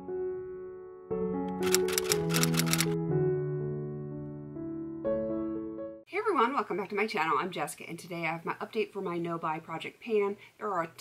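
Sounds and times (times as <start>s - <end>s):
electric piano music: 0.0s - 6.0s
sharp clicks: 1.5s - 3.0s.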